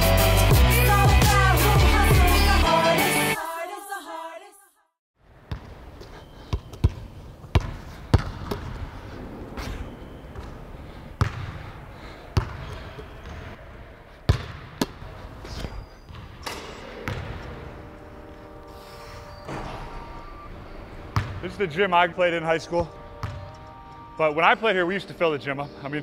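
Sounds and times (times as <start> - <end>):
basketball bouncing on hardwood floor: 6.5 - 8.8, 11.2 - 11.5, 12.4 - 12.7, 14.3 - 15.0, 17.0 - 17.5, 21.2 - 21.4, 23.2 - 23.4.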